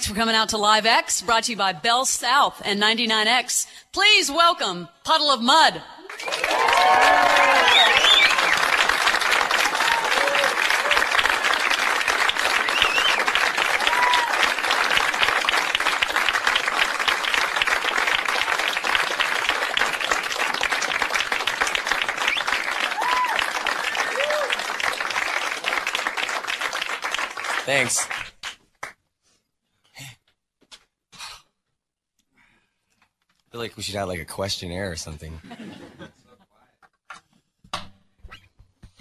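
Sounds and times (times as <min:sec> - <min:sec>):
audience applauding and cheering: 0:06.0 - 0:29.0
people shouting: 0:06.4 - 0:08.0, 0:09.8 - 0:11.0, 0:13.8 - 0:14.4, 0:22.9 - 0:23.4, 0:24.0 - 0:24.5.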